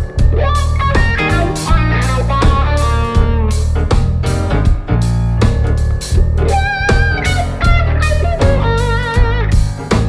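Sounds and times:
blues-funk band playing: 0.0s - 10.0s
electric guitar lead: 0.0s - 10.0s.

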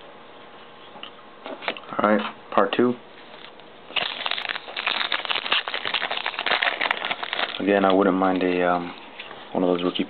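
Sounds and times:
foil wrapper crinkling and tearing: 3.9s - 8.6s.

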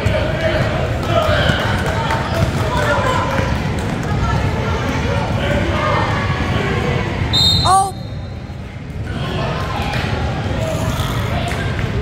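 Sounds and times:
indistinct voices in a gym: 0.0s - 12.0s.

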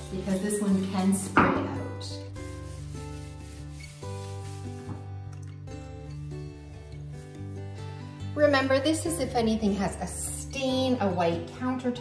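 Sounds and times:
cloth rubbing on surface: 0.0s - 5.1s.

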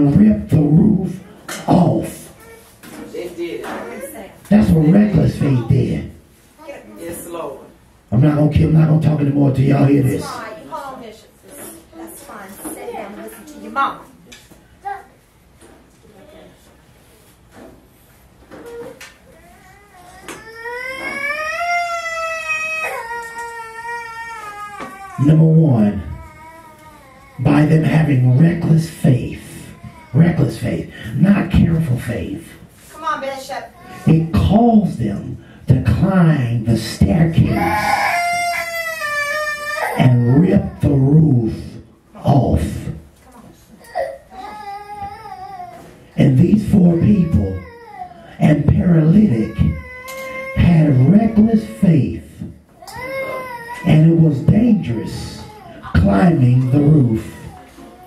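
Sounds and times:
child wailing: 18.7s - 25.3s, 37.5s - 40.8s, 49.4s - 51.8s, 52.8s - 56.0s.

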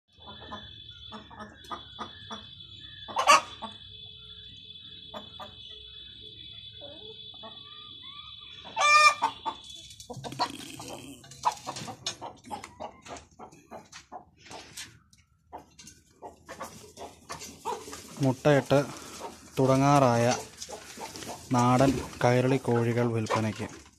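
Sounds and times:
chickens clucking: 0.1s - 23.9s
longer pitched chicken call: 0.2s - 3.9s, 6.8s - 13.2s.

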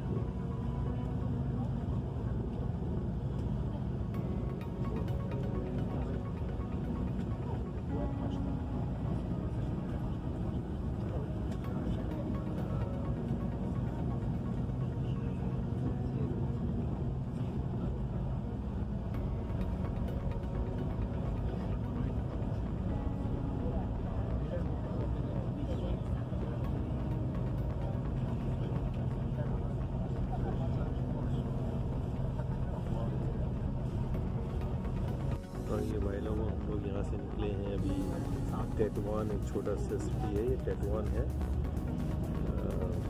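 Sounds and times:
bus engine and road rumble: 0.0s - 43.0s.

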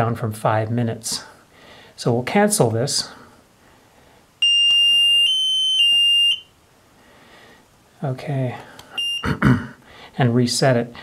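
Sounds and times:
timer buzzer high beep: 4.4s - 6.5s, 9.0s - 9.4s.

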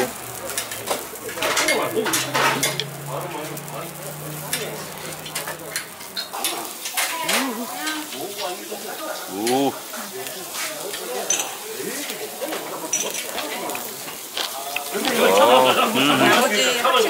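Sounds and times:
meat sizzling on a grill: 0.0s - 17.0s.

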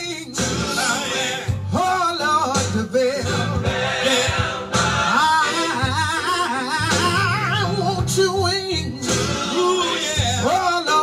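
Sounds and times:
band accompaniment: 0.0s - 11.0s
man singing gospel with vibrato: 0.0s - 11.0s.

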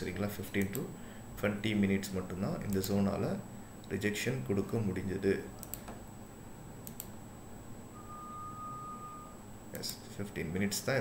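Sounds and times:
steady electronic beep: 7.9s - 9.6s.

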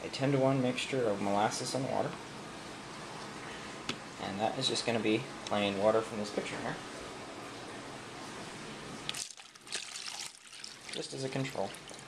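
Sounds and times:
water pouring into plastic tub: 9.1s - 12.0s.

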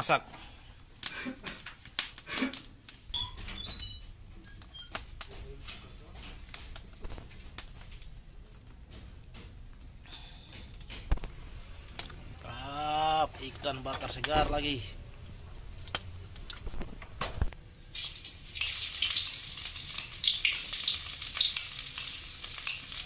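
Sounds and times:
fire crackling: 0.0s - 23.0s
fish grilling over fire: 0.4s - 23.0s.

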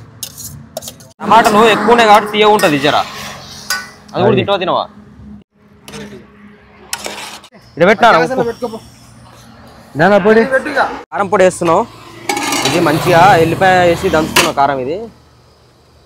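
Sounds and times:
ladle scraping a steel bowl: 6.9s - 7.5s, 12.2s - 13.1s.

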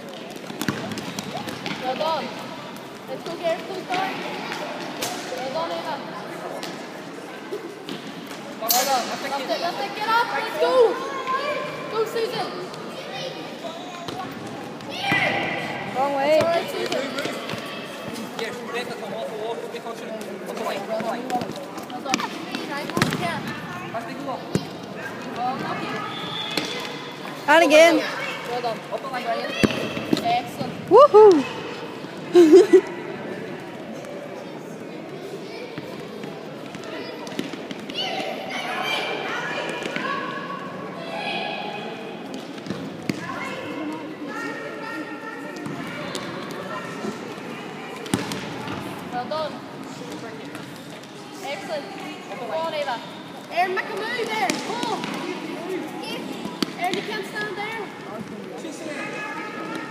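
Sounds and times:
children's voices: 36.9s - 41.5s, 53.5s - 57.9s.

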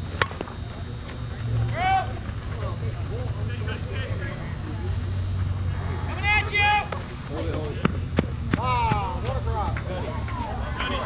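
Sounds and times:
players shouting: 5.8s - 7.0s, 8.6s - 11.0s.

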